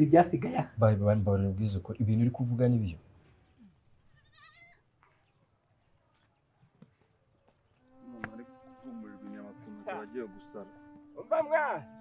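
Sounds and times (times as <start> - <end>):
faint wavering animal call: 7.9 - 12.0.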